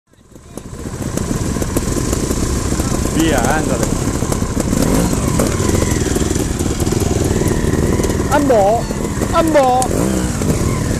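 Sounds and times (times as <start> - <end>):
motorcycle engine running: 0.1 - 10.9.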